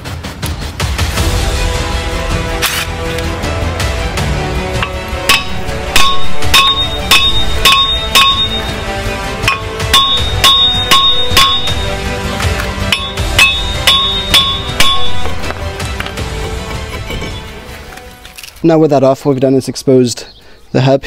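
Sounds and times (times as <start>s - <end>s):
background music: 0.0s - 20.0s
hammer striking metal disc: 4.8s - 8.8s, 9.4s - 12.2s, 12.9s - 15.6s.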